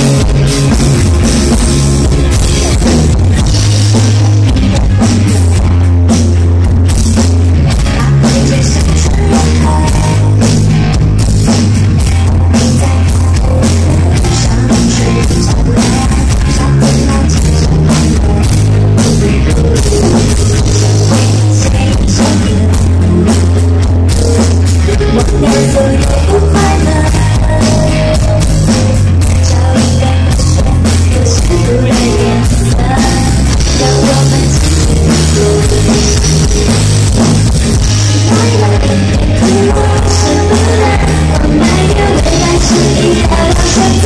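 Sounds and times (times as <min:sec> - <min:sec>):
bass line: 0:00.0 - 0:44.0
drum kit: 0:00.0 - 0:44.0
electric guitar: 0:00.0 - 0:44.0.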